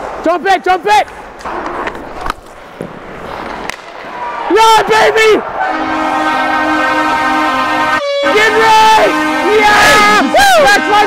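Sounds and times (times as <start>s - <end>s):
players shouting excitedly: 4.0s - 11.0s
arena goal horn: 5.6s - 11.0s.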